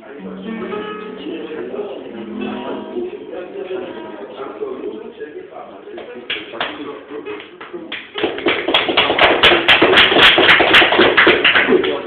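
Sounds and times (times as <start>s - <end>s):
acoustic guitar strummed fast: 0.2s - 3.2s.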